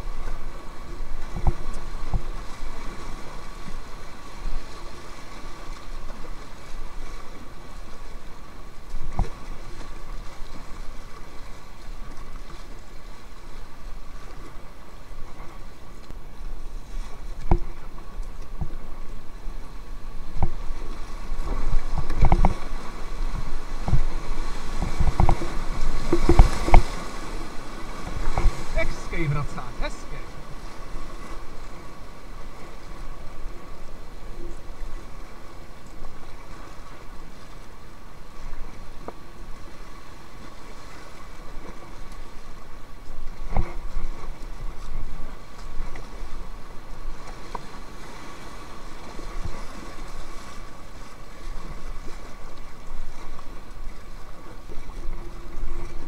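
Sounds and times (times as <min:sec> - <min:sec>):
paddle knocking against kayak: 0:17.4 - 0:18.8, 0:23.4 - 0:27.1
river rapids rushing: 0:22.6 - 0:31.3.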